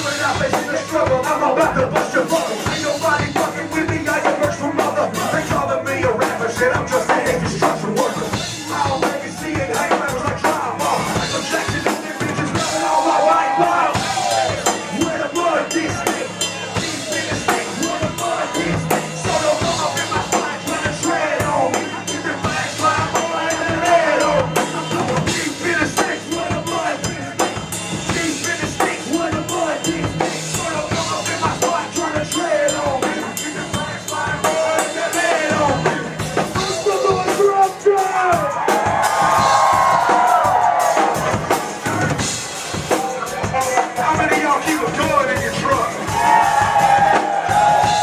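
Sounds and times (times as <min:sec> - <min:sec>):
person rapping into microphone: 0:00.0 - 0:14.0, 0:14.8 - 0:27.4, 0:28.1 - 0:38.5, 0:43.3 - 0:46.0
backing track with drum beat: 0:00.0 - 0:48.0.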